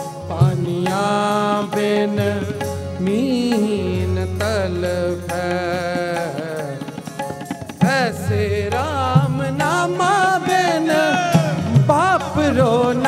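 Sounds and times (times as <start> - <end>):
harmonium drone and chords: 0.0 - 13.0
man singing: 0.0 - 13.0.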